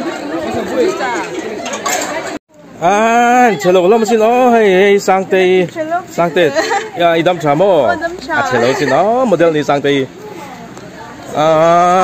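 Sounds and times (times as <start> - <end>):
people chattering outdoors: 0.0 - 12.0.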